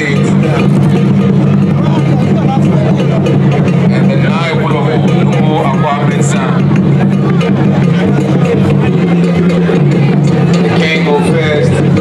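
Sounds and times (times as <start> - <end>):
crowd talking and calling: 0.0 - 12.0
loud low hum: 0.0 - 12.0.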